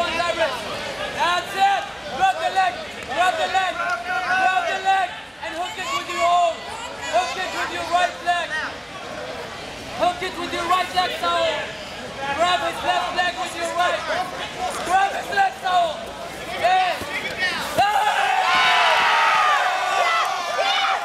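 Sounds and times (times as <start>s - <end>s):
crowd chatter: 0.0s - 21.0s.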